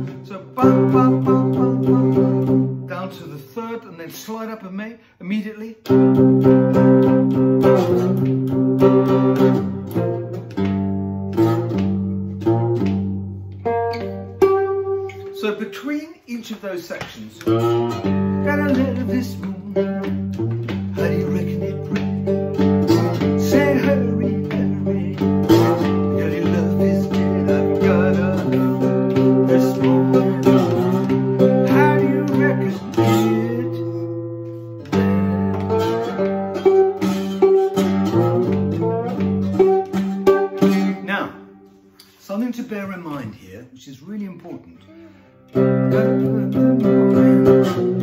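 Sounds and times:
slide guitar blues riff: 0.0s - 4.6s, 5.3s - 43.3s, 44.0s - 48.0s.

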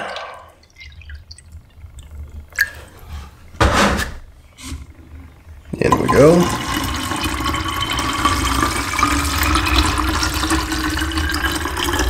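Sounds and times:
water pouring and trickling: 0.0s - 3.5s, 5.9s - 12.0s.

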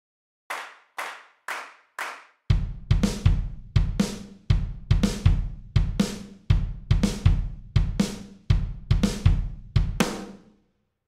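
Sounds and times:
sharp hand claps: 0.5s - 2.4s.

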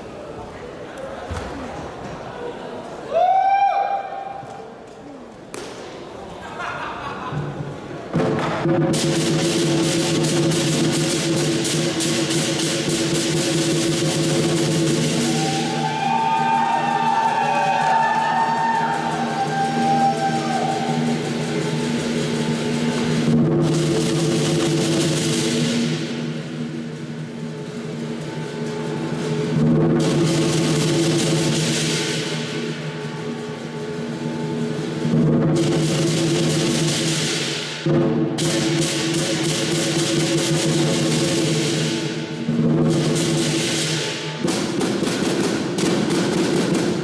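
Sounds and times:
big drum beating: 7.4s - 47.0s
crashing cymbals: 8.7s - 47.0s.

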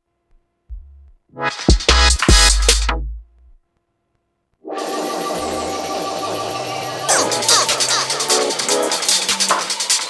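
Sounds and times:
dense synth texture: 4.7s - 9.8s.

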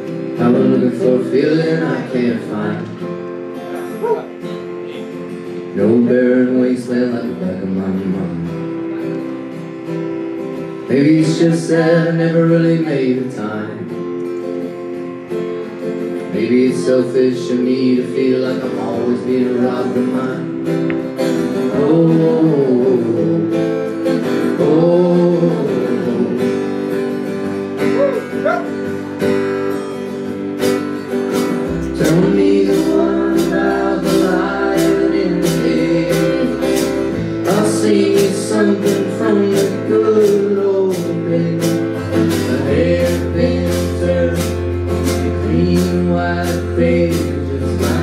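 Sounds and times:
acoustic guitar strumming: 0.0s - 48.0s
man and woman singing: 0.3s - 2.9s, 5.7s - 8.4s, 10.9s - 13.8s, 16.3s - 20.6s, 21.6s - 23.6s, 24.4s - 26.5s, 31.8s - 48.0s.

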